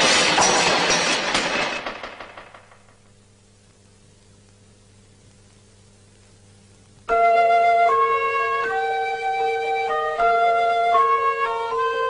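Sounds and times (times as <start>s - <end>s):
collapsing pile clattering: 0.0s - 3.0s.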